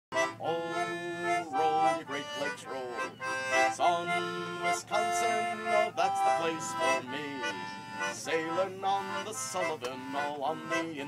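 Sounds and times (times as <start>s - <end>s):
concertina playing chords: 0.2s - 11.0s.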